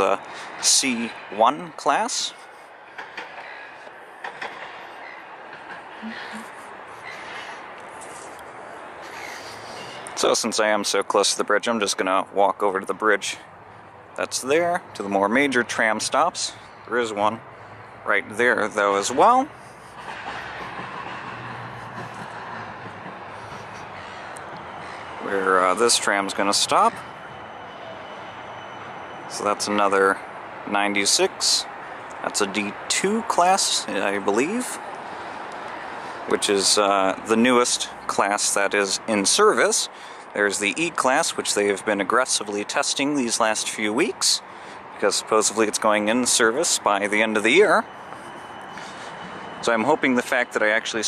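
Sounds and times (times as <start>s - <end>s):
city traffic hum: 0.0s - 51.0s
tram rolling on rails: 0.0s - 51.0s.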